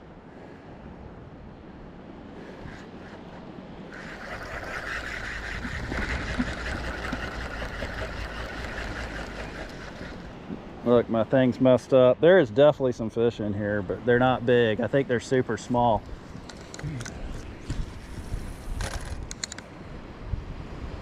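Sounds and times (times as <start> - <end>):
wind rumbling on microphone: 0.0 - 11.2, 15.7 - 21.0
fishing reel whirring: 2.6 - 10.4.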